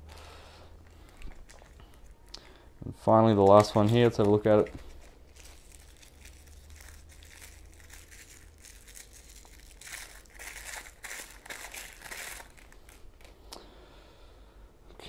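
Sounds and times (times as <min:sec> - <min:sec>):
plastic wrapping crinkling: 0:00.8 - 0:02.7, 0:03.3 - 0:13.4.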